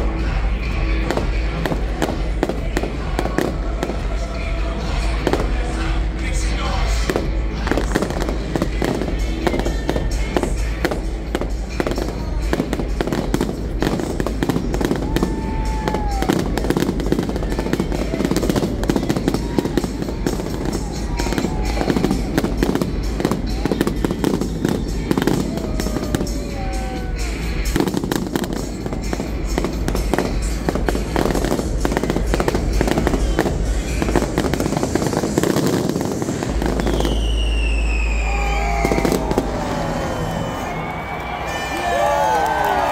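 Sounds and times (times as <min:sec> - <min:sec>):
fireworks bangs and crackling: 0:00.0 - 0:42.9
firework whistle falling: 0:36.2 - 0:42.9.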